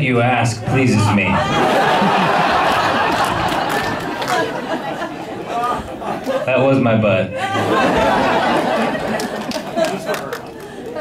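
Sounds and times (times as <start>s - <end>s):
audience chattering: 0.0s - 11.0s
audience laughing: 0.6s - 11.0s.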